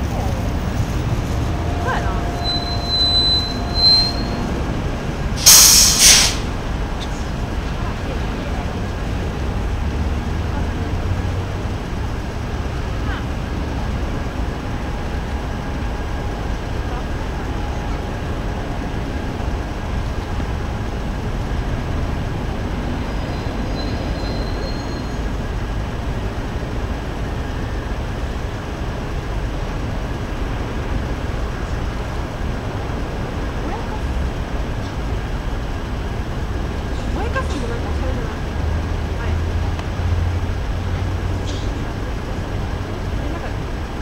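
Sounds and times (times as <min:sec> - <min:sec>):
city traffic rumble: 0:00.0 - 0:44.0
faint high squeal: 0:01.4 - 0:04.7, 0:23.3 - 0:25.3.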